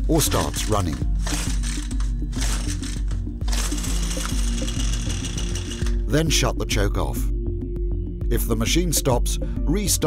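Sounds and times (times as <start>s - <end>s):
background music: 0.0s - 10.0s
starter rope pulled: 0.2s - 6.0s
two-stroke engine running: 1.2s - 6.0s.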